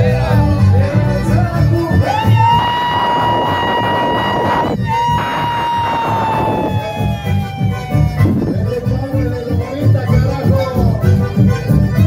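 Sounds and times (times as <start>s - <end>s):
band with accordions playing: 0.0s - 12.0s
man's high-pitched yell: 2.0s - 8.6s.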